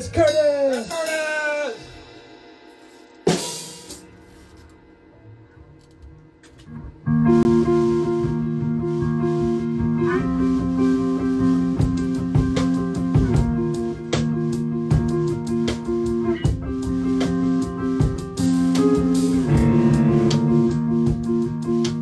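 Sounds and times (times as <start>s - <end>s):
electric bass: 5.8s - 22.0s
electric guitar: 6.5s - 22.0s
drum hits: 11.8s - 22.0s.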